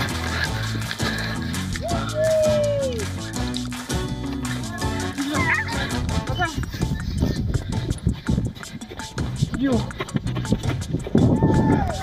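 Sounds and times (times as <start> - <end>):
background music: 0.0 - 12.0
footfalls crunching on snow: 0.0 - 12.0.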